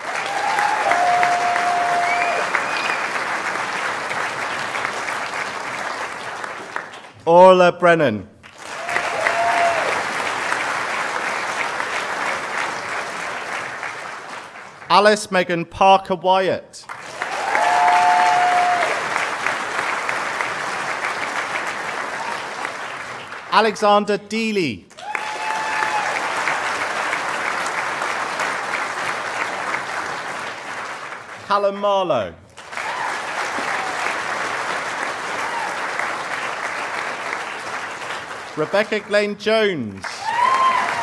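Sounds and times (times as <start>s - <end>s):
audience applauding: 0.0s - 7.2s, 8.4s - 15.0s, 16.8s - 23.9s, 24.9s - 41.0s.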